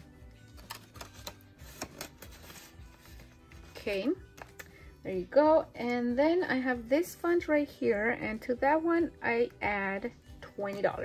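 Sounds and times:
soft background music: 0.0s - 11.0s
paper bills rustling into envelope: 0.4s - 4.8s.

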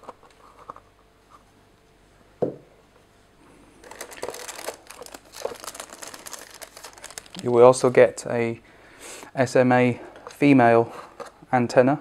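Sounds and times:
plastic packaging crinkling: 3.8s - 8.2s.

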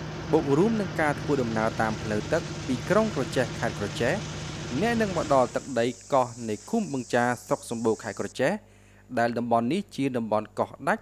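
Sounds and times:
man speaking: 0.4s - 8.6s
high-pitched insect buzz: 4.7s - 8.4s.

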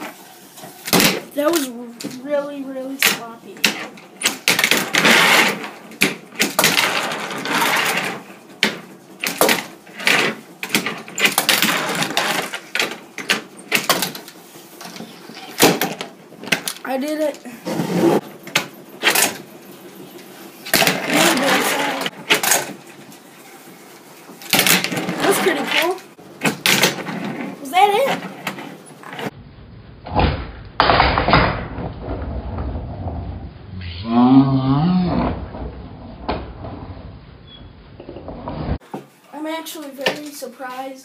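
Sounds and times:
handboard wheels rolling: 3.8s - 23.2s, 24.7s - 29.3s.

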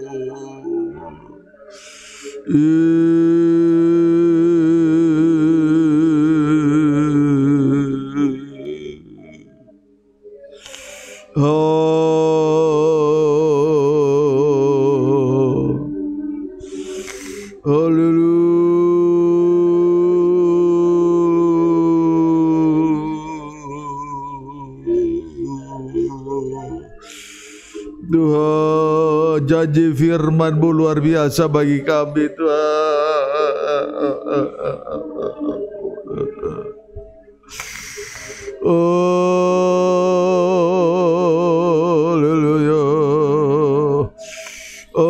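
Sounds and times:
man singing long held notes: 0.0s - 9.7s, 10.6s - 45.0s
breath drawn: 10.6s - 11.3s, 16.6s - 17.6s, 37.5s - 38.6s, 44.2s - 45.0s
man making choked vocal sounds: 21.8s - 28.5s, 32.4s - 39.4s.

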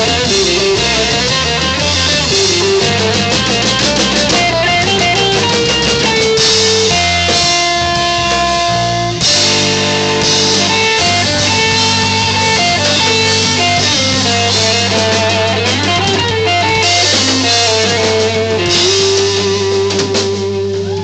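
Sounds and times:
guitar melody: 0.0s - 21.0s
live rock band: 0.0s - 21.0s.

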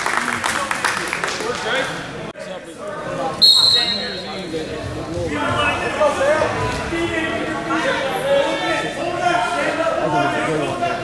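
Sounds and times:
murmur of voices: 0.0s - 11.0s
referee's whistle: 3.4s - 4.4s.

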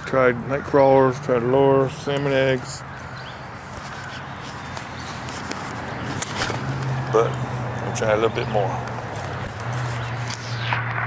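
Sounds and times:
camera handling rustle: 3.0s - 7.5s.

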